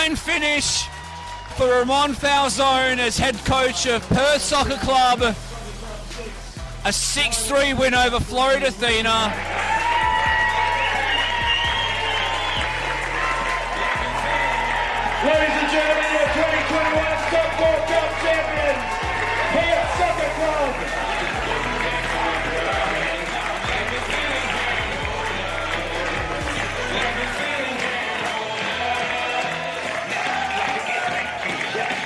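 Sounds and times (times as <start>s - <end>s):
excited voices shouting and cheering: 0.0s - 32.0s
music playing: 0.0s - 32.0s.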